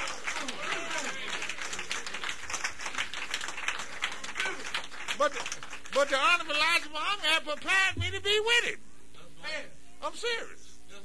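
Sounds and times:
audience applauding: 0.0s - 6.5s
man speaking: 6.0s - 11.0s.

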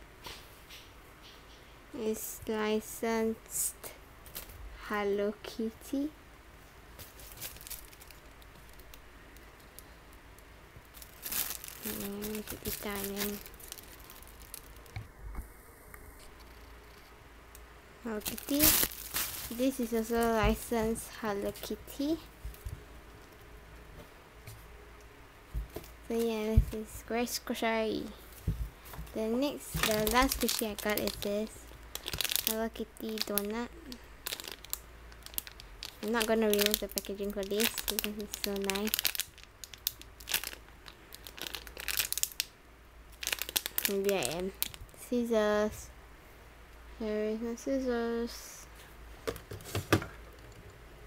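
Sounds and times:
plastic packaging crinkles: 7.0s - 10.0s, 10.8s - 15.0s, 18.1s - 22.2s, 28.8s - 42.5s, 43.1s - 45.0s.

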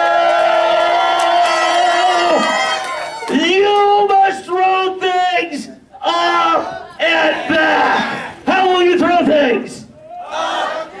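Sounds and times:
man shouting through a microphone: 3.3s - 10.1s.

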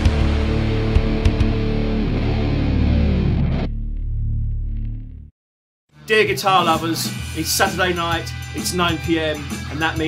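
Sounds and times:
distorted electric guitar rock music: 0.0s - 5.2s, 6.2s - 10.0s.

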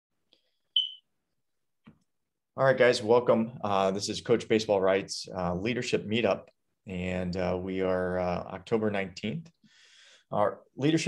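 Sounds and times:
short high electronic beep: 0.8s - 1.0s.

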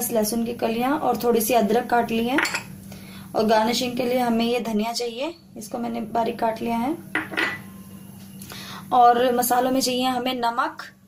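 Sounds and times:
low steady hum: 0.0s - 11.0s
glass bowl clinking on stone: 7.1s - 7.8s.

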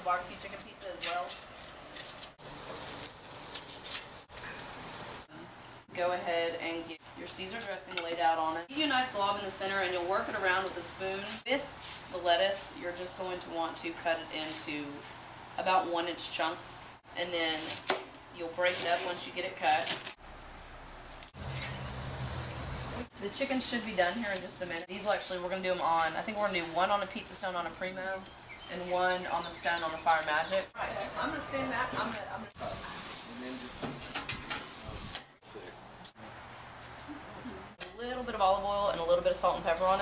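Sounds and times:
chicken sizzling on grill: 2.4s - 5.3s, 21.4s - 23.1s, 32.6s - 35.2s
low hum: 20.2s - 23.1s.

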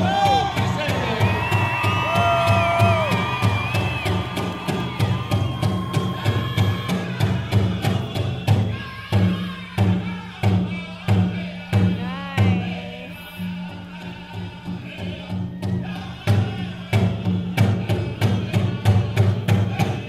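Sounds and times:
big drum beat: 0.0s - 20.0s
high wavering group singing: 0.0s - 20.0s.

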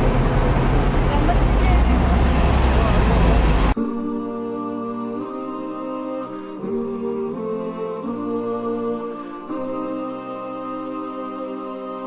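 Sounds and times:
bus engine idling: 0.0s - 3.8s
music: 3.8s - 12.0s.

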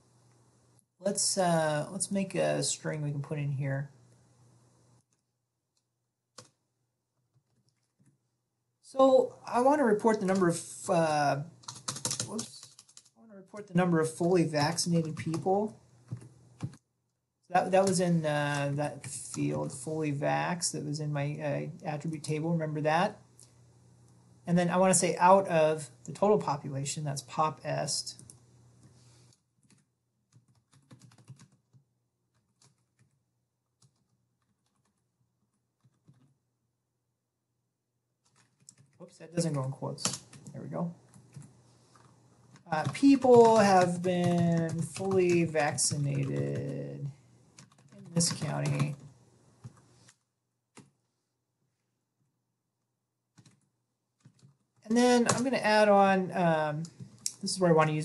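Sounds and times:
typing on computer keyboard: 6.4s - 6.6s, 7.3s - 8.2s, 11.6s - 13.1s, 16.1s - 16.8s, 29.6s - 33.2s, 33.8s - 36.4s, 38.2s - 39.0s, 41.1s - 46.8s, 47.6s - 49.9s, 50.7s - 50.9s, 53.3s - 55.5s
computer keyboard key presses: 11.6s - 13.1s, 29.6s - 31.8s, 53.4s - 53.6s.

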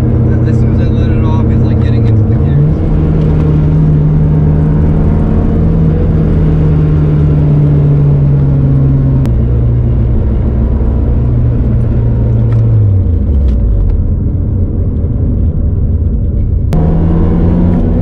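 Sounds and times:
car engine droning: 0.0s - 18.0s.

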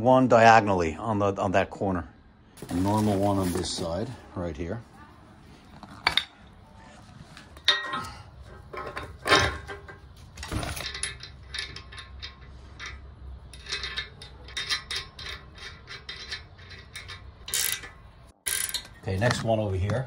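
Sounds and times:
metal parts knocking: 7.6s - 19.4s
ratcheting wrench clicking: 11.0s - 19.0s.

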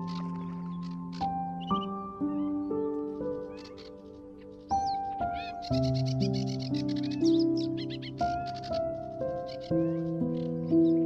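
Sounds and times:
calm instrumental relaxation music: 0.0s - 11.0s.

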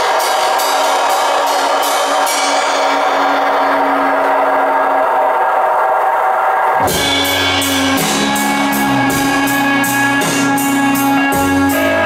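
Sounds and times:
distorted electric guitar: 0.0s - 12.0s
rock band playing: 6.8s - 12.0s.

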